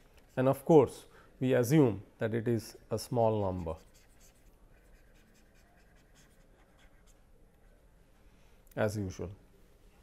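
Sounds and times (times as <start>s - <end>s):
stylus scratching on tablet screen: 0.1s - 0.9s, 3.1s - 7.9s.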